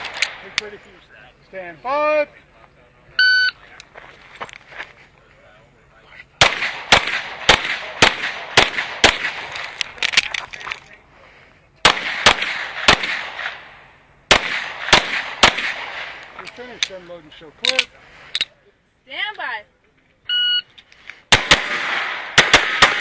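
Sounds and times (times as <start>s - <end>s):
pistol shots: 0.0s - 0.8s, 6.4s - 10.3s, 11.8s - 16.4s, 21.3s - 23.0s.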